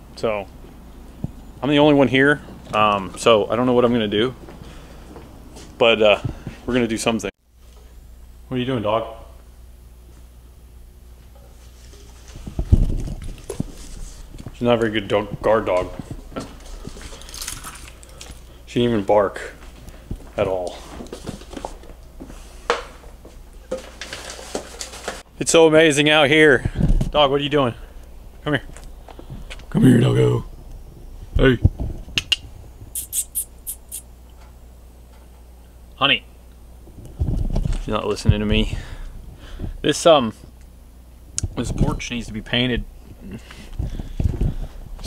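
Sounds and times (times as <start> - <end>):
mouth clicks: 32.2 - 34.1
high-pitched kissing squeaks: 33.0 - 34.1.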